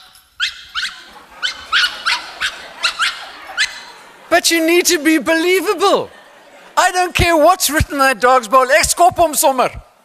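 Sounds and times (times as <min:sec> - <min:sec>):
small dog yapping: 0:00.4 - 0:03.8.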